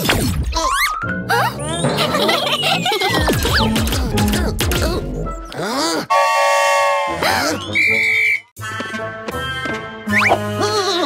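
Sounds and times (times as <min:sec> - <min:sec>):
background music: 0:00.4 - 0:11.0
high piercing whistle: 0:07.7 - 0:08.5.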